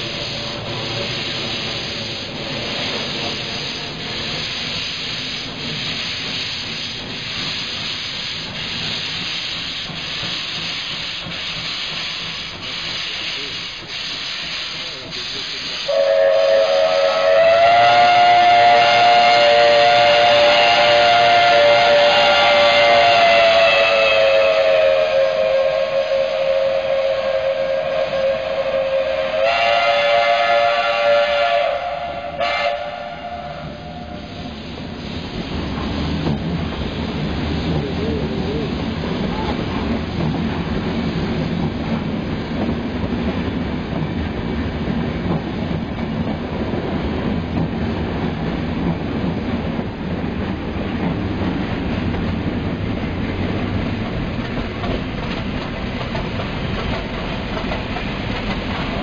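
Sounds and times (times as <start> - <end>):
steam locomotive hissing: 0.0 - 59.0
steam whistle blast: 15.8 - 34.5.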